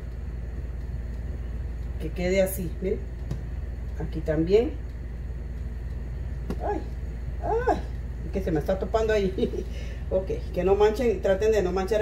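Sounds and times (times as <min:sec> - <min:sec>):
low background hum: 0:00.0 - 0:12.0
woman exclaiming: 0:06.6 - 0:07.9.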